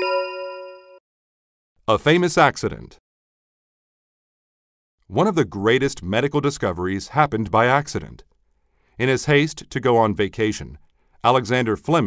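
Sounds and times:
bell-like chime: 0:00.0 - 0:01.0.

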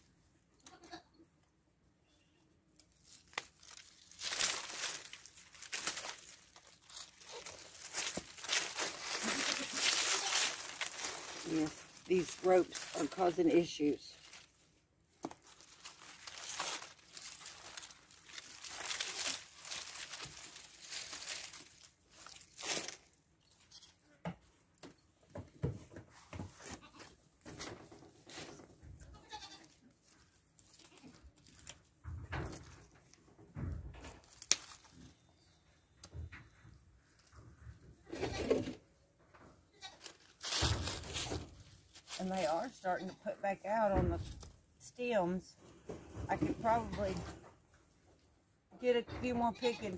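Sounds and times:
dry vines rustling and crackling: 0:02.7 - 0:24.0, 0:26.5 - 0:33.3, 0:34.0 - 0:35.4, 0:39.7 - 0:47.2.

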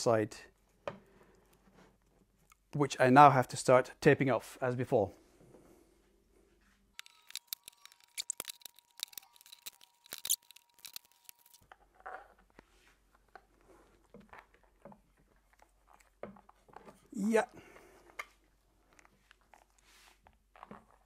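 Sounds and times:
tape ripping off roll: 0:07.0 - 0:11.6
tape rubbing and handling: 0:07.0 - 0:11.6.

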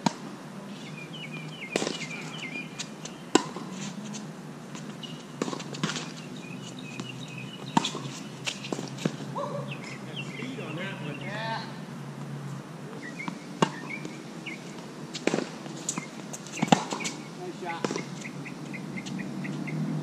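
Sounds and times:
tennis ball bounces: 0:00.0 - 0:00.3, 0:01.3 - 0:10.5, 0:12.9 - 0:19.7
tennis rackets hitting balls: 0:01.3 - 0:10.6, 0:12.9 - 0:19.2.

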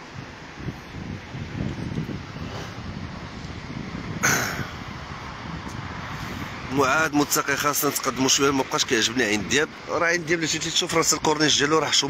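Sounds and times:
passing traffic: 0:00.0 - 0:12.0
wind on microphone: 0:00.0 - 0:12.0.

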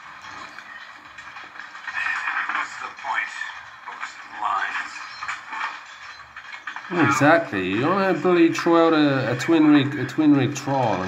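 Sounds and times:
tinny film sound from laptop speakers: 0:00.0 - 0:11.0.

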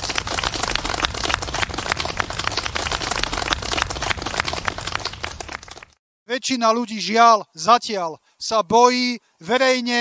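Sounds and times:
people applauding: 0:00.0 - 0:06.0.

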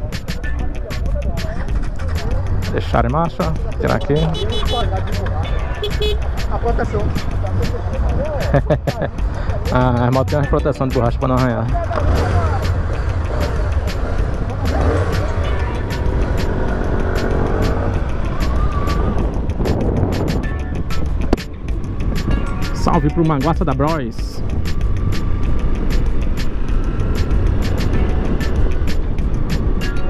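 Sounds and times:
background music with a beat: 0:00.0 - 0:30.0
motorcycle engines idling: 0:00.0 - 0:30.0
people talking: 0:00.3 - 0:12.8, 0:14.5 - 0:16.1, 0:22.7 - 0:24.4.

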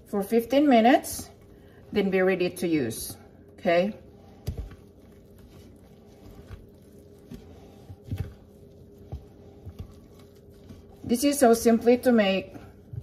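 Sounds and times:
wooden spoon stirring batter: 0:00.1 - 0:13.0.

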